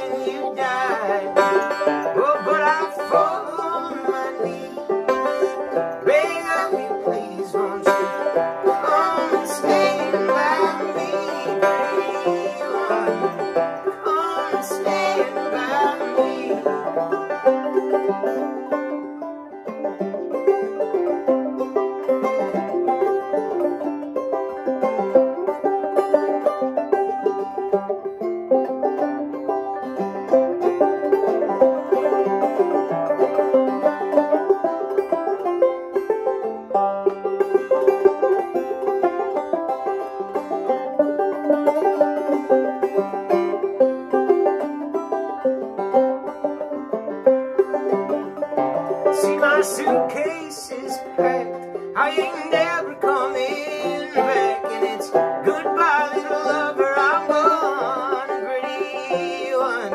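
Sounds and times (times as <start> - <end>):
banjos playing: 0.0 - 59.9.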